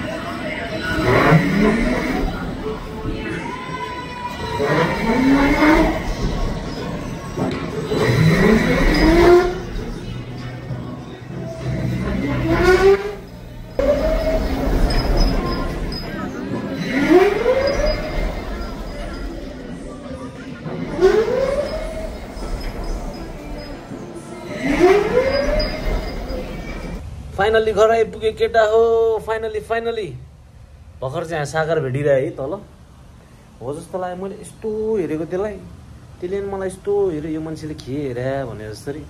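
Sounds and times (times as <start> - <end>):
amusement ride rumble: 0.0 - 39.0
rising tone: 0.7 - 27.0
toy motor revving: 0.9 - 2.4, 4.6 - 6.2, 7.9 - 9.7, 11.7 - 16.2, 16.8 - 19.4, 24.5 - 27.0.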